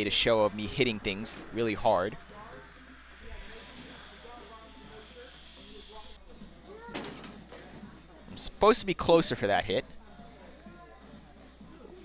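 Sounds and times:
faint voices: 0.0s - 8.4s.

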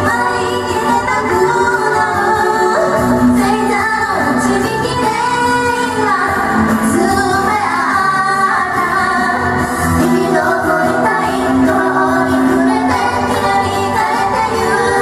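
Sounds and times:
backing track: 0.0s - 15.0s
women singing: 0.0s - 15.0s.

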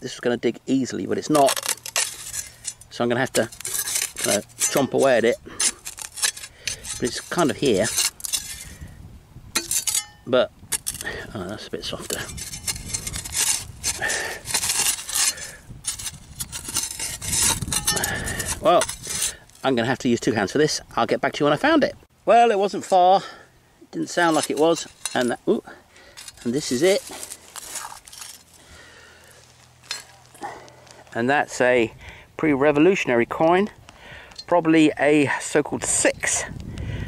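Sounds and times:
spade scraping stony soil: 0.1s - 8.9s, 9.5s - 20.6s, 22.3s - 31.6s.

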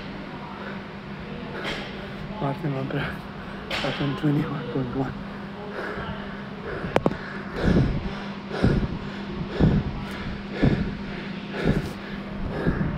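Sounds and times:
man breathing hard: 1.5s - 1.9s, 5.2s - 12.9s.

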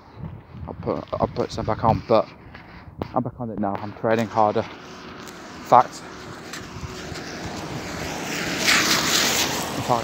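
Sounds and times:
road vehicle passing: 3.9s - 10.0s.

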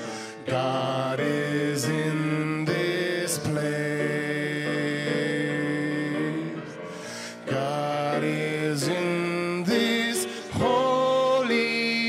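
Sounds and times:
musical accompaniment: 0.0s - 12.0s.

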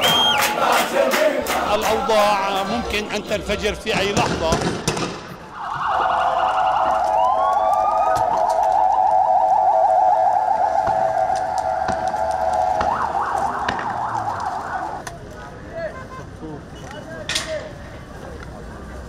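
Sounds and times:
ambulance siren warbling: 5.5s - 15.0s.

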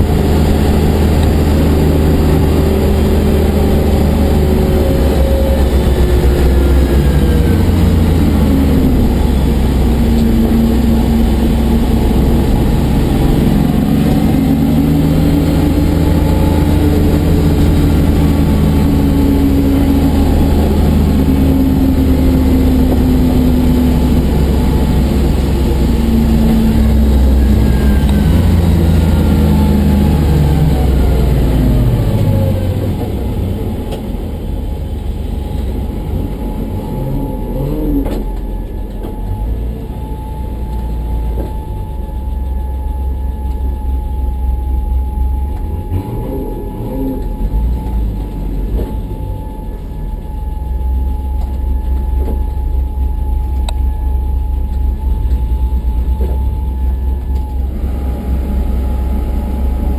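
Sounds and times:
car engine revving through gears: 0.0s - 41.7s, 45.5s - 50.4s
road noise: 0.0s - 59.9s.

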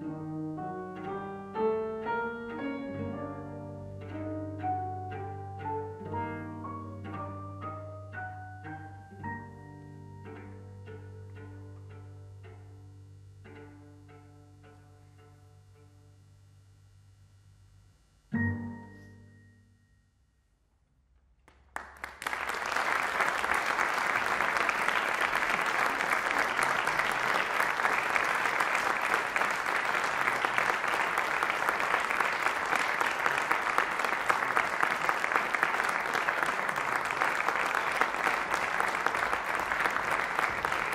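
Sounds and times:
audience applause: 21.5s - 40.9s.

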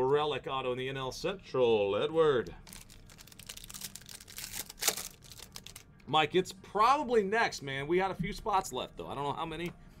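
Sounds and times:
foil wrapper crinkling and tearing: 2.6s - 5.9s.

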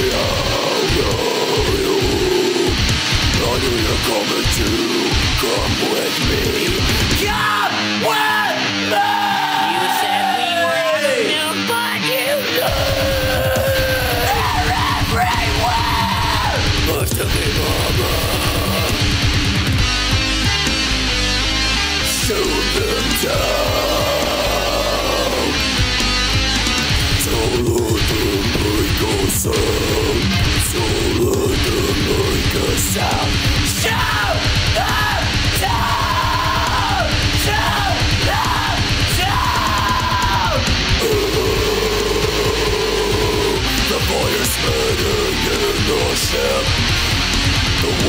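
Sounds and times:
fast pounding drums: 0.0s - 7.5s, 12.6s - 20.9s, 22.1s - 48.0s
heavy rock song: 0.0s - 48.0s
person yelling vocals: 3.4s - 19.1s, 22.2s - 25.6s, 27.2s - 46.7s.

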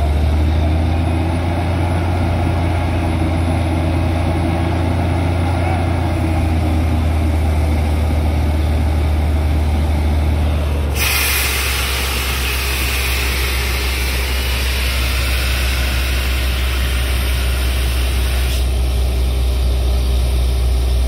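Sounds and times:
drilling rig engine humming: 0.0s - 21.0s
compressed air hissing: 10.9s - 19.1s.

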